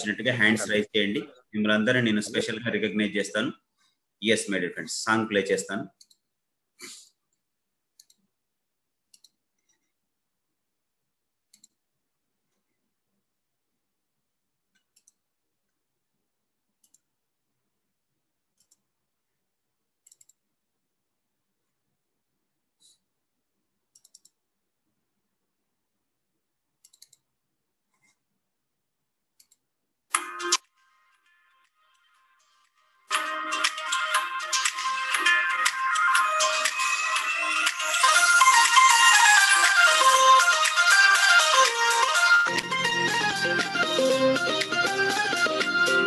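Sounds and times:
breathy puff: 6.8 - 7.2.

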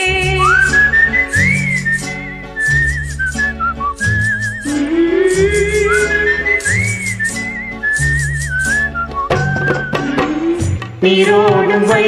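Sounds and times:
whistled melody: 0.0 - 10.8
backing track with bass: 0.0 - 11.2.

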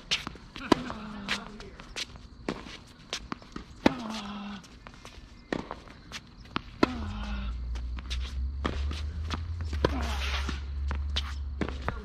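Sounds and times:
players' footsteps: 0.0 - 12.0
ball bouncing on court: 6.5 - 12.0.

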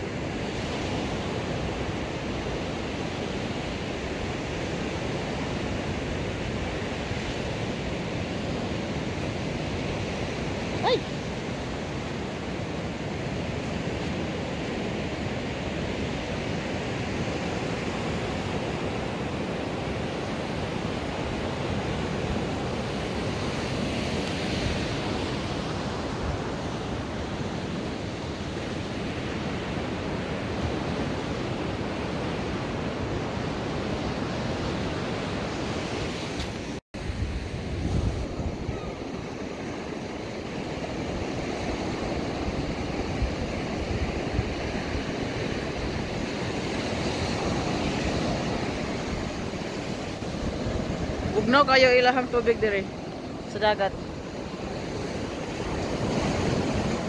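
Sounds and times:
ocean surf breaking: 0.0 - 57.0
wind buffeting microphone: 0.0 - 57.0.

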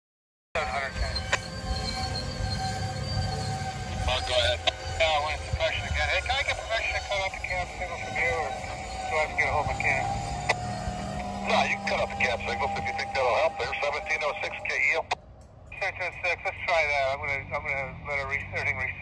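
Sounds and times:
radio voices from a scanner: 0.6 - 1.4, 3.9 - 15.2, 15.8 - 19.0
freight train rolling past: 0.6 - 17.5.

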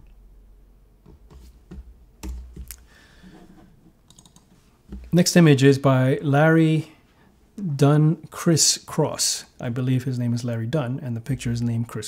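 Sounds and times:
computer keyboard clicks and taps: 2.2 - 2.8, 4.1 - 4.5.

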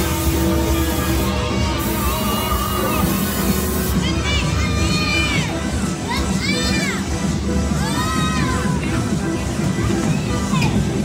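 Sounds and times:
loud ride noise: 0.0 - 11.0.

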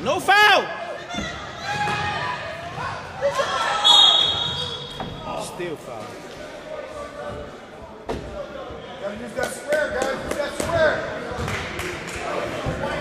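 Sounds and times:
voices in a gym: 0.0 - 13.0.

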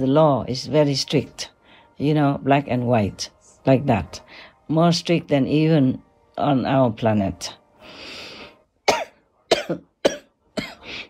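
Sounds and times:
woman breathing in: 7.8 - 8.6
woman coughing: 8.8 - 10.9.

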